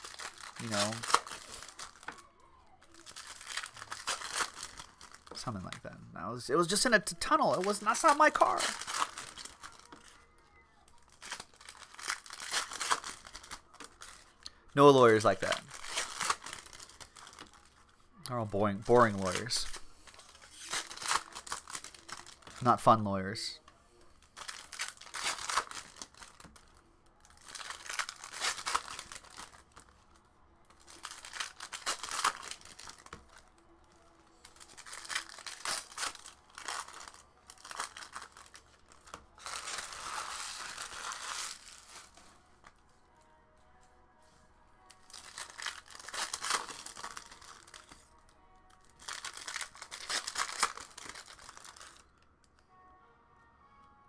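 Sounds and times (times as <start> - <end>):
foil wrappers tearing and crinkling: 0.0 - 5.8, 6.6 - 17.9, 18.6 - 23.0, 24.1 - 42.4, 44.9 - 52.1.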